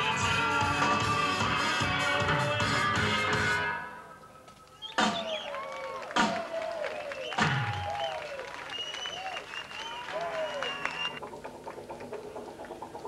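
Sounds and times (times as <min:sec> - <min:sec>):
audience applause: 0:05.1 - 0:11.2.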